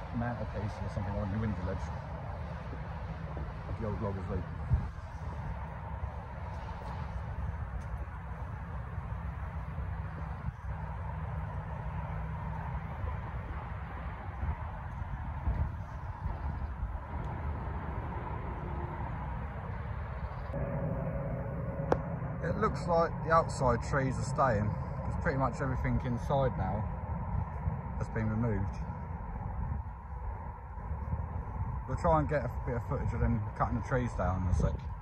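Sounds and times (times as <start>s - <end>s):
distant machinery hum: 0.0s - 35.0s
faint steady whine: 0.0s - 35.0s.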